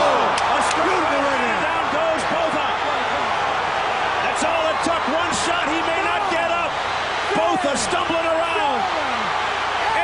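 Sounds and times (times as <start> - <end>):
crowd yelling and cheering: 0.0 - 10.0.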